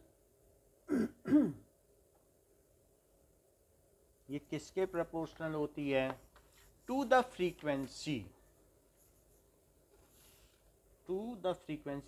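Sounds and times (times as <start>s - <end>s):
man clearing his throat: 0.9s - 1.7s.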